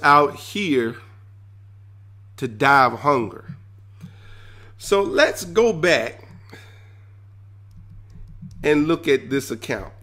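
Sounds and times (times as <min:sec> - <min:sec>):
steady low electrical hum: 0:00.0 - 0:10.0.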